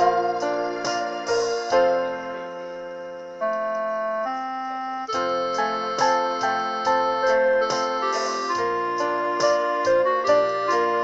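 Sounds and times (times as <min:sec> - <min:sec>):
electronic keyboard sustained chords: 0:00.0 - 0:11.0.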